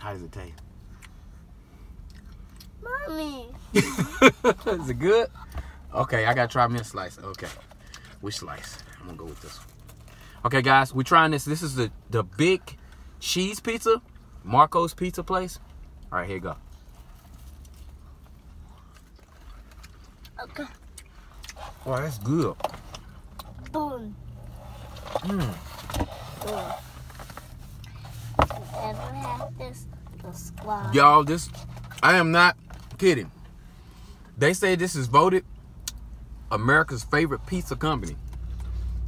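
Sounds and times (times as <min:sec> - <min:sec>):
low steady hum: 0:00.0 - 0:39.0
child chewing: 0:00.8 - 0:02.7, 0:16.7 - 0:23.8.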